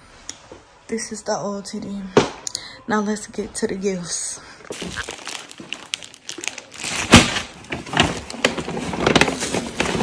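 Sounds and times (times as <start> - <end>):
plastic bags crinkling: 4.7 - 10.0.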